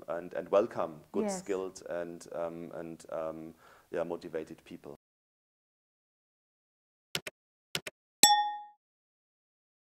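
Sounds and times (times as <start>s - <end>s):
notification bell ding: 8.2s - 8.8s.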